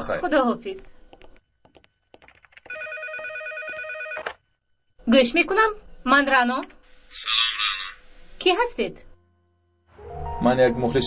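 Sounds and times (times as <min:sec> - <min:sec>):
desk telephone ringing: 0:02.7 - 0:04.5.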